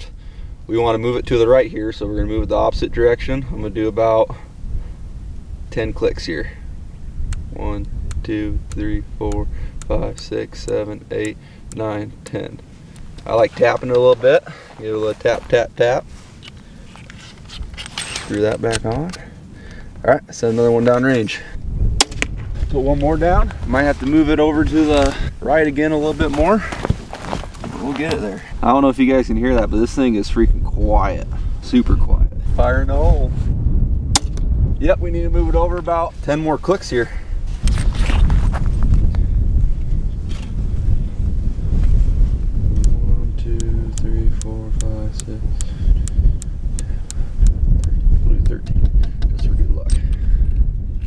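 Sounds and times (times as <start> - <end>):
microphone handling noise: 6.6 - 51.0
light ticks and scrapes: 16.2 - 19.2
low rumble: 21.5 - 51.0.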